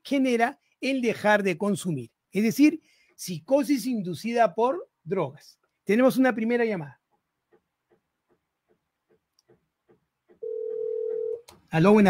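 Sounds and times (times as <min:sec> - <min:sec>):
steady telephone tone: 0:10.4 - 0:11.4.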